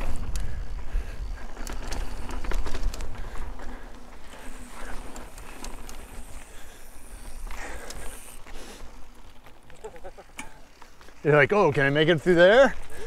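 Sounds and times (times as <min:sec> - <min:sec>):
bike clicks and rattles: 0:00.0 - 0:13.0
bike tyre noise on ground: 0:00.0 - 0:13.0.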